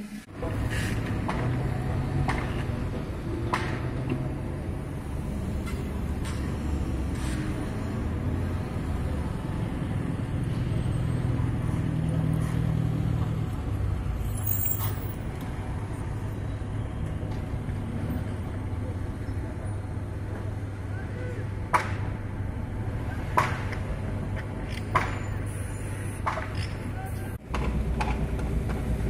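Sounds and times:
diesel engine rumbling: 0.0s - 29.0s.

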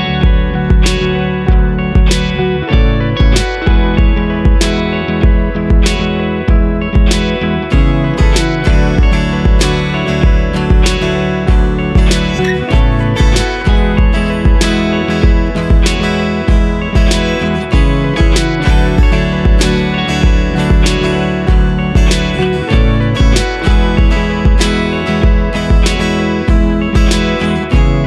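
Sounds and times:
acoustic guitar strumming: 0.0s - 28.0s
low thumping beat: 0.0s - 28.0s.

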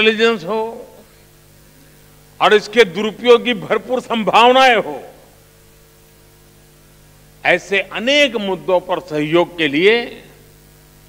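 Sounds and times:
man speaking: 0.0s - 1.0s, 2.4s - 5.3s, 7.4s - 10.4s
low electrical hum with hiss: 0.0s - 11.0s.

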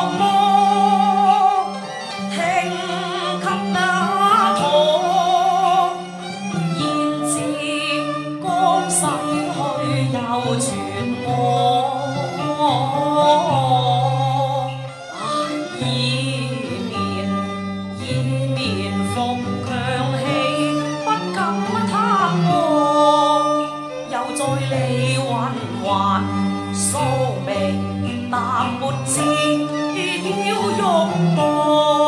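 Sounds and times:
traditional instrumental accompaniment: 0.0s - 32.0s
woman singing opera: 0.0s - 32.0s.

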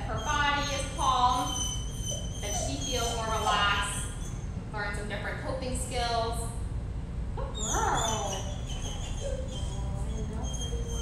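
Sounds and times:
dog whining: 0.0s - 4.6s, 7.4s - 11.0s.

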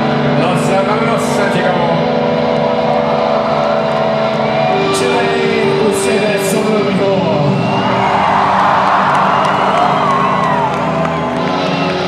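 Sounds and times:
distorted electric guitar droning: 0.0s - 12.0s.

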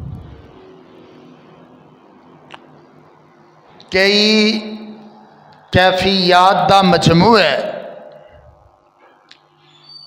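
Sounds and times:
sound system hum: 0.0s - 10.0s.

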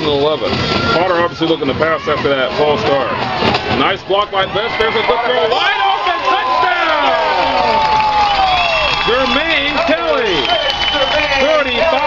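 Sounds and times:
crowd cheering and yelling: 0.0s - 12.0s.

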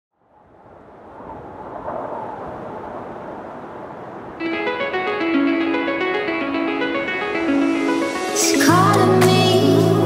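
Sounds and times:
steady rushing noise: 0.1s - 8.8s.

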